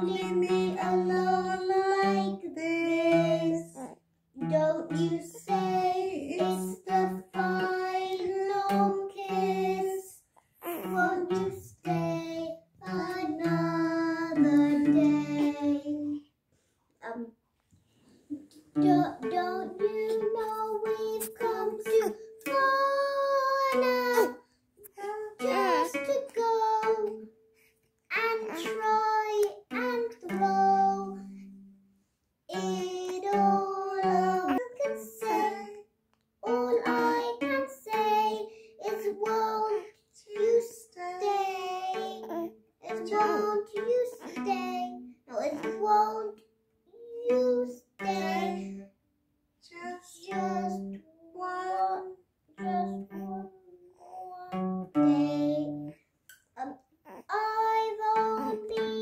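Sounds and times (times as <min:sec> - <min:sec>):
person singing: 0:00.0 - 0:16.2, 0:18.3 - 0:27.2, 0:28.1 - 0:31.4, 0:32.5 - 0:35.8, 0:36.4 - 0:46.3, 0:47.2 - 0:48.9, 0:49.7 - 0:56.0, 0:57.2 - 0:59.0
strummed acoustic guitar: 0:43.0 - 0:46.0.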